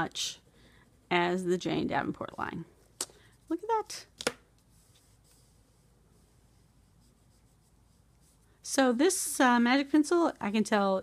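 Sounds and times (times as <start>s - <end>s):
fingertip rubbing paper: 4.7s - 8.4s.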